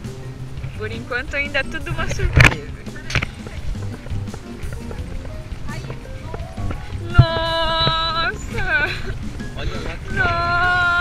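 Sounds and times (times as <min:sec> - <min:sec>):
faint music: 0:00.0 - 0:11.0
footsteps on dirt path: 0:00.0 - 0:11.0
wind on microphone: 0:00.0 - 0:11.0.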